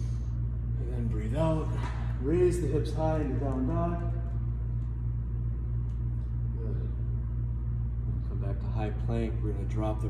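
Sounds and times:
ventilation system hum: 0:00.0 - 0:10.0.

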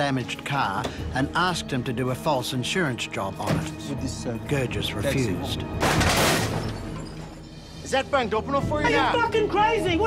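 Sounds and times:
smash against a car: 0:05.8 - 0:06.8
glass breaking: 0:05.8 - 0:07.4.

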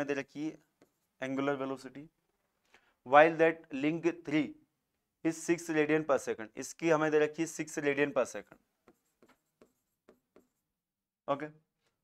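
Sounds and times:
pen scratching on display board: 0:00.8 - 0:01.2, 0:08.4 - 0:10.7.

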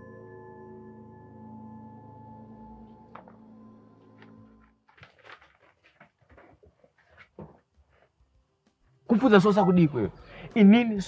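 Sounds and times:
paper sheets rustling: 0:04.2 - 0:08.1.

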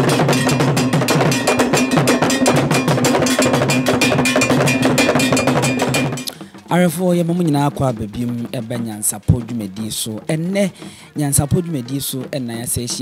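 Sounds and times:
metal bell ringing: 0:00.0 - 0:06.3
fast drumming: 0:00.0 - 0:13.0.

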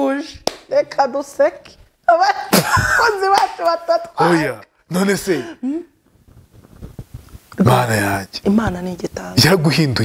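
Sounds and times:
woman talking animatedly: 0:00.0 - 0:04.2.

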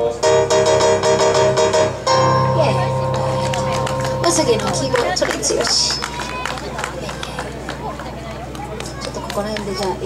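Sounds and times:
held keyboard note: 0:00.0 - 0:05.3
people talking outdoors: 0:01.8 - 0:10.0.

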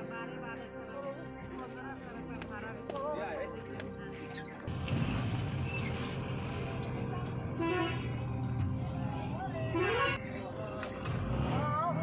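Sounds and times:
music with voice: 0:00.0 - 0:04.7, 0:06.0 - 0:12.0
vehicle engine rumble: 0:04.6 - 0:12.0.

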